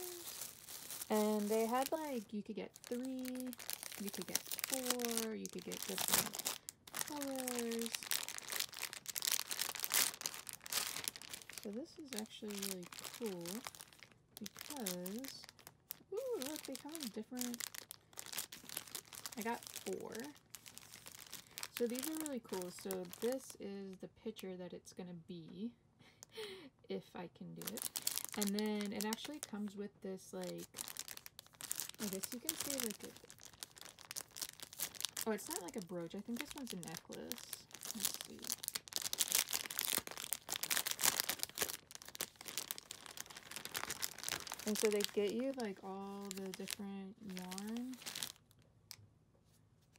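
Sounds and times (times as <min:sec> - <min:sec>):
plastic bag crinkling: 0:00.0 - 0:23.6, 0:27.6 - 0:29.7, 0:30.3 - 0:48.6.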